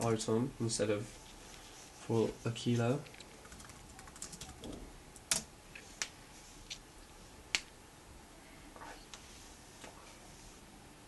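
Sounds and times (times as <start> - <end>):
laptop keyboard typing: 3.2 - 5.5.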